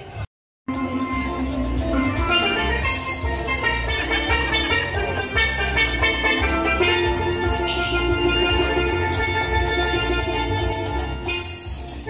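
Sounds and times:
backing track with bass and drums: 0.0 - 12.0
steel pan melody: 0.7 - 12.0.

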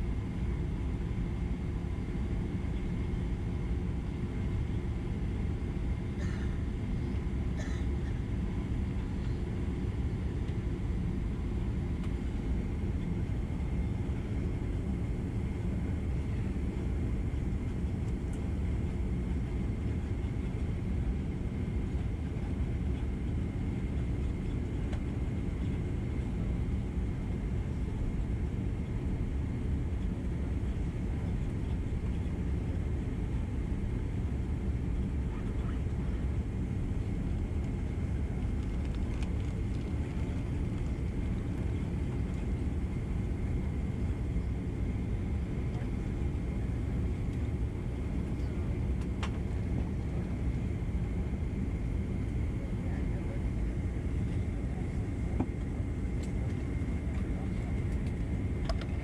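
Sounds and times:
jet engines low rumble: 0.0 - 59.0
thin steady whine: 0.0 - 59.0.

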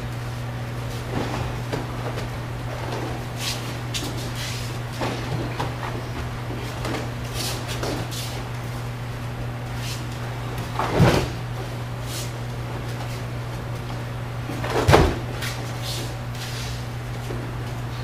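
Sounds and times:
steady low hum: 0.0 - 18.0
bare-foot steps: 0.9 - 8.8
soft thuds on mats: 14.5 - 15.6.

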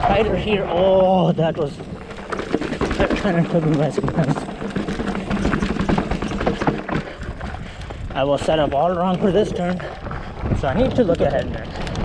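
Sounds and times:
bike rattling and knocking: 0.0 - 12.0
tyres crunching over gravel: 1.2 - 12.0
wind rumble on microphone: 5.2 - 12.0.

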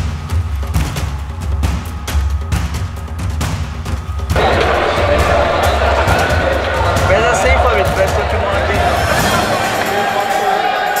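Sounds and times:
music with deep bass beat: 0.0 - 9.4
crowd chatter: 4.4 - 11.0.

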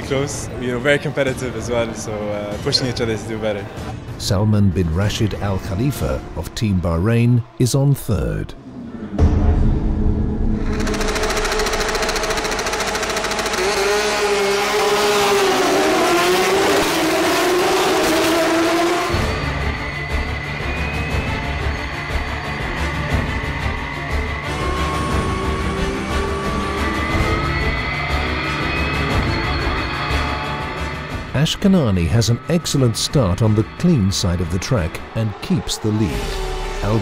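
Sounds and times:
race car engines revving: 10.6 - 37.0
car engine rumble from cockpit: 10.9 - 19.1.

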